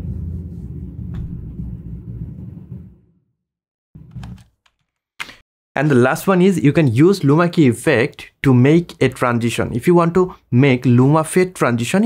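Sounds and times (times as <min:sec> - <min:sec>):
low outdoor rumble: 0:00.0 - 0:03.1.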